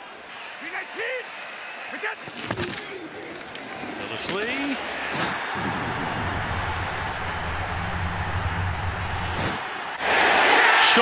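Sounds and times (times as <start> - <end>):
crowd cheering loudly: 0.0 - 2.3, 2.9 - 11.0
stadium crowd rumble: 3.0 - 11.0.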